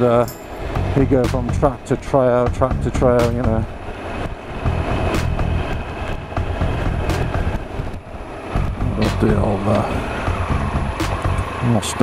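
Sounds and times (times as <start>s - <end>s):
motorcycle engine running: 2.4s - 12.0s.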